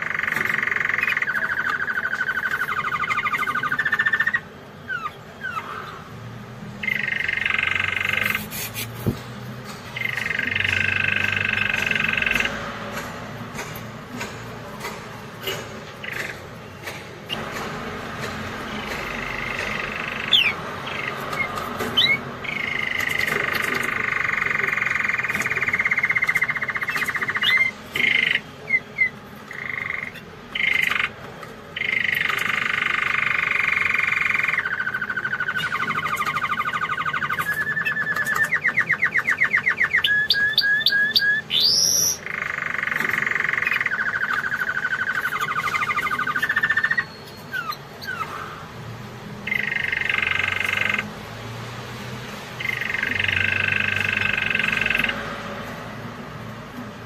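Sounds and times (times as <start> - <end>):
canary singing trills: 0.0 - 9.2, 9.9 - 12.8, 18.6 - 51.5, 52.5 - 56.2.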